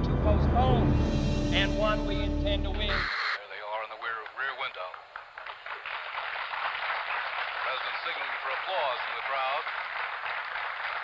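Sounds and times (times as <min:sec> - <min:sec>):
narrow-band television speech: 0:00.2 - 0:05.8, 0:07.6 - 0:09.7
burst of static: 0:02.9 - 0:05.2.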